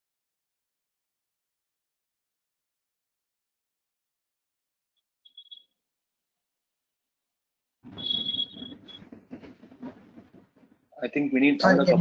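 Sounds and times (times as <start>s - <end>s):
faint crackling room noise: 7.8s - 12.0s.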